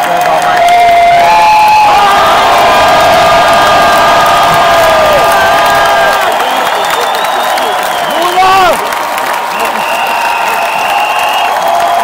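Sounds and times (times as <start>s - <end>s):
concert crowd cheering and screaming: 0.0s - 12.0s.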